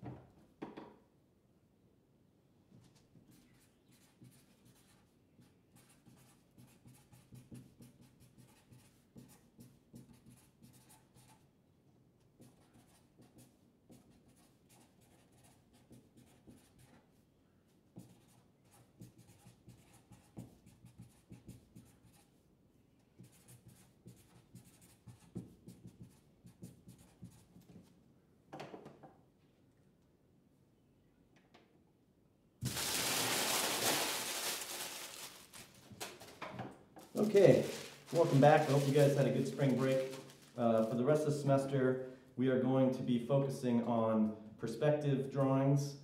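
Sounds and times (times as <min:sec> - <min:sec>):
marker pen writing: 0:02.7 - 0:11.5, 0:12.4 - 0:17.2, 0:17.9 - 0:22.4, 0:23.1 - 0:27.9.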